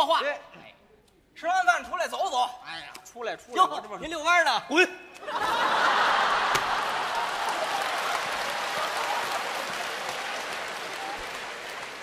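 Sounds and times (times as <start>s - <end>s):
audience applauding: 5.9s - 12.0s.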